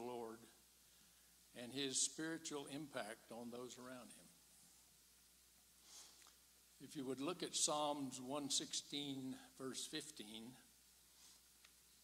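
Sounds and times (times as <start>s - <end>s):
soft breath: 0.8s - 1.5s, 5.8s - 6.4s, 11.1s - 11.6s.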